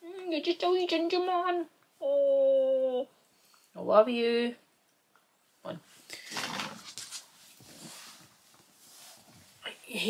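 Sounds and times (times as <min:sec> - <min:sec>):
woman speaking: 0:00.0 - 0:01.7.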